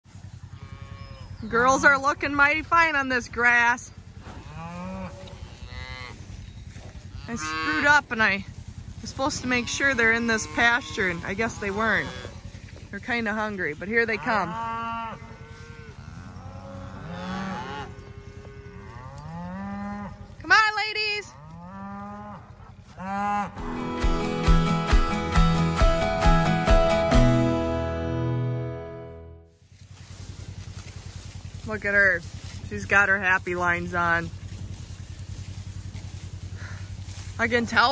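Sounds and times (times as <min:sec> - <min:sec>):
cow mooing: 0:00.3 - 0:03.0, 0:03.6 - 0:08.3, 0:09.1 - 0:20.4, 0:21.0 - 0:24.0
music with quick repeated notes: 0:23.6 - 0:29.4.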